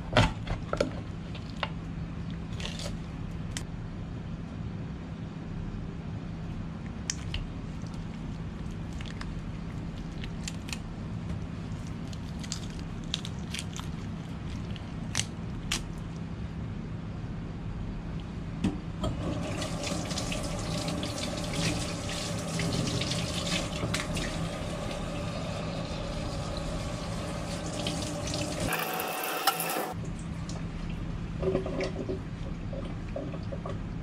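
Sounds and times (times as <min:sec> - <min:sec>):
steady low hum: 0:00.0 - 0:28.7, 0:29.9 - 0:34.0
tap water running and splashing: 0:19.0 - 0:30.0.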